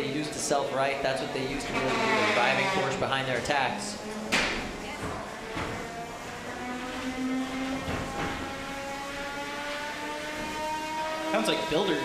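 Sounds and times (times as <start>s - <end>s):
robots hitting sharp knocks: 4.3s - 5.8s.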